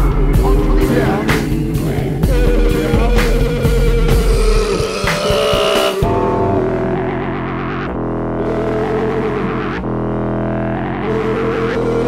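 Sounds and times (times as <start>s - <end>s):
distorted guitar: 0.0s - 12.0s
low distorted drone: 0.0s - 12.0s.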